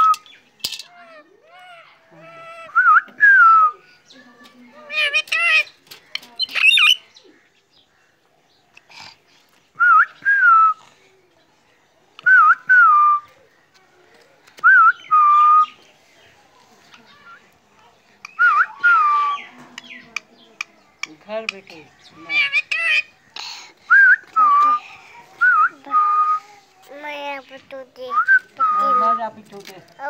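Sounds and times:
harsh loud calls: 22.0s - 23.3s.

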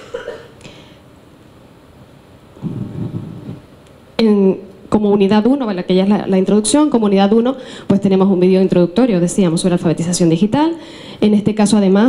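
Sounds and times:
low rumbling noise: 2.4s - 3.8s.

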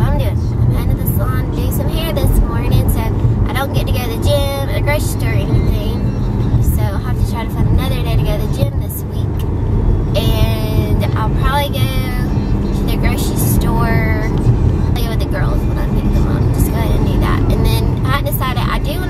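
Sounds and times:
road and engine rumble in car: 0.0s - 19.0s.

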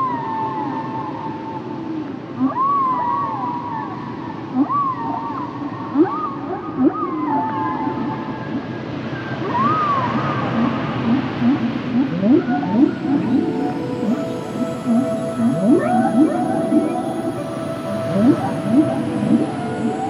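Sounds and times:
ambient music with sustained tones: 0.0s - 20.0s
whale calls: 2.4s - 8.8s, 9.4s - 20.0s.

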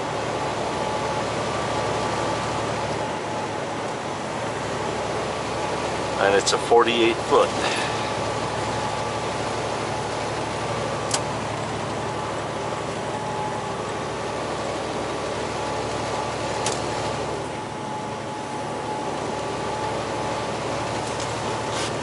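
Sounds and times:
truck engine and road noise: 0.0s - 22.0s.

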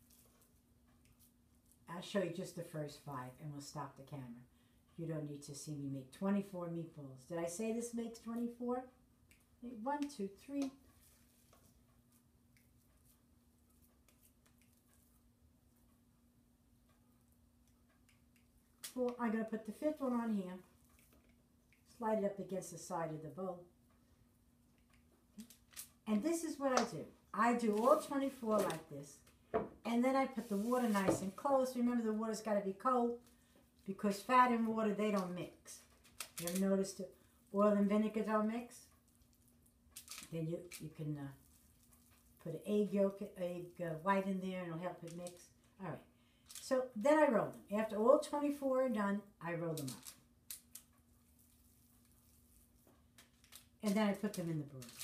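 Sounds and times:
faint steady hum: 0.0s - 55.0s
crackles of foil handling: 25.4s - 26.0s, 35.7s - 36.9s, 40.0s - 40.8s, 49.7s - 55.0s.

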